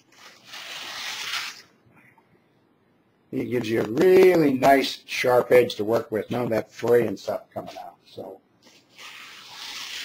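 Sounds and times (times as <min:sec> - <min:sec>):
rotary cutter slicing cloth: 0:09.0 - 0:10.0.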